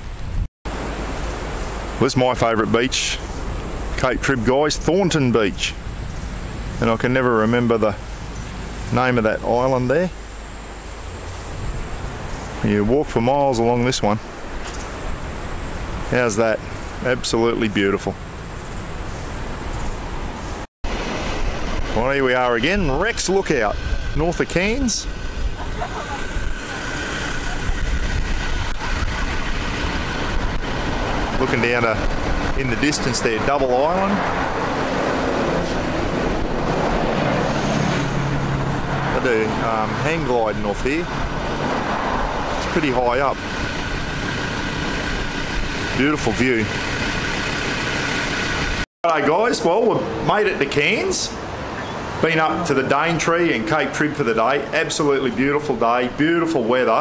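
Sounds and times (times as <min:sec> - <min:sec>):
wind rushing over microphone: 0:00.0 - 0:48.9
low surf washing: 0:19.4 - 0:56.8.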